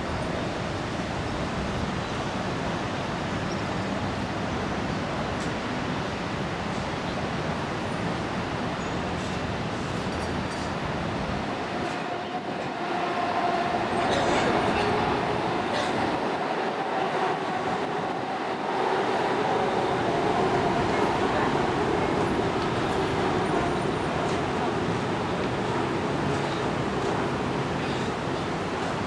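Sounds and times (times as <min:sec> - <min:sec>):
city traffic noise: 0:00.0 - 0:29.0.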